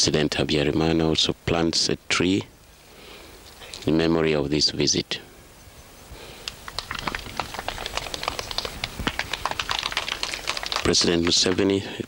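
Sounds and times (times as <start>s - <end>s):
people clapping: 6.7s - 11.8s.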